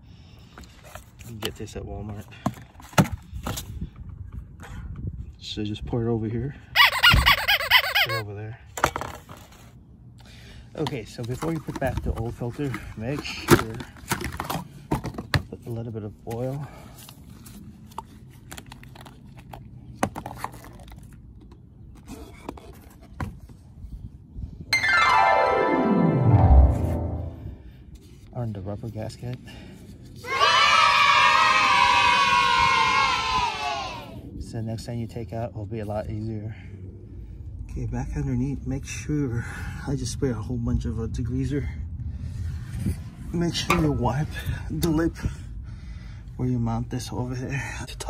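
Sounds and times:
background music: 24.7s - 27.5s
downward sweeping sound: 24.7s - 27.6s.

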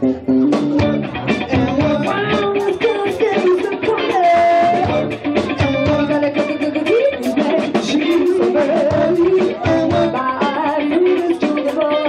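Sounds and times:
electric guitar: 0.0s - 12.0s
steady drum beat: 0.4s - 12.0s
woman singing: 1.5s - 12.0s.

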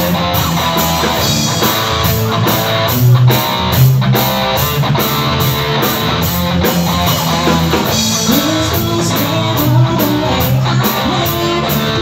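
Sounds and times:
electric guitar: 0.0s - 12.0s
live band music: 0.0s - 12.0s.

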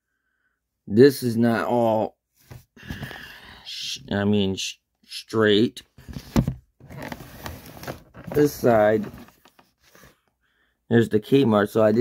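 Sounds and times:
cardboard box rustling and scraping: 6.0s - 10.2s.

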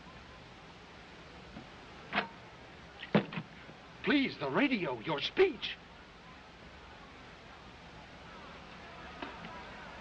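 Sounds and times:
old film soundtrack hiss: 0.0s - 10.0s.

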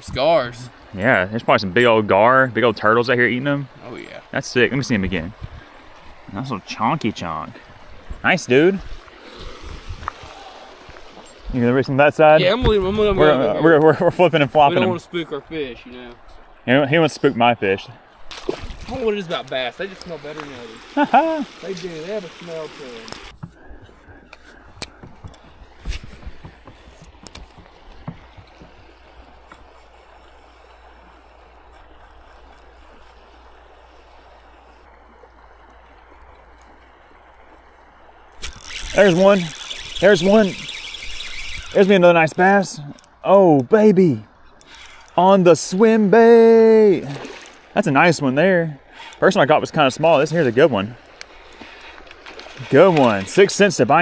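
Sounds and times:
quiet outdoor background: 0.0s - 54.0s
water rushing: 0.0s - 54.0s.

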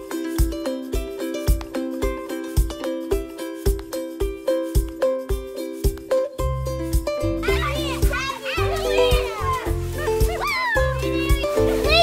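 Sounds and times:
background music with bass line: 0.0s - 12.0s
children shouting and squealing: 7.2s - 12.0s.

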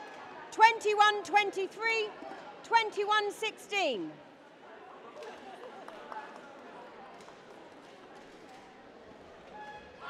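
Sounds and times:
echoing chatter of voices: 0.0s - 9.4s.

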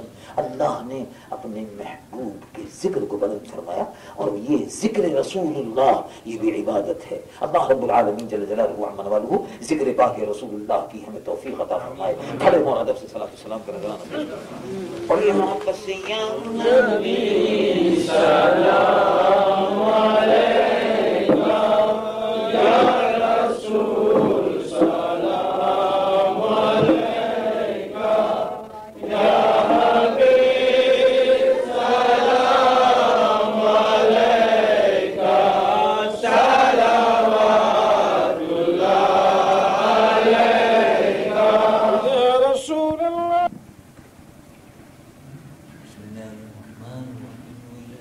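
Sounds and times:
voices chanting devotional recitation: 0.0s - 43.6s, 45.2s - 48.0s.

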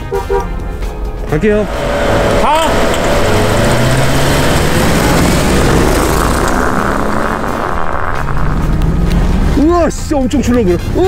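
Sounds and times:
car engine accelerating: 1.5s - 11.0s
flat tyres rumbling on road: 1.5s - 11.0s.

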